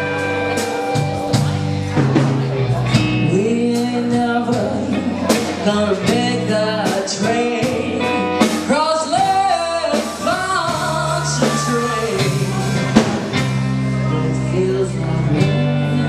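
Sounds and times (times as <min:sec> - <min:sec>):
electric guitar: 0:00.0 - 0:16.0
steady bass line: 0:00.0 - 0:16.0
woman singing: 0:03.2 - 0:12.6, 0:14.0 - 0:16.0.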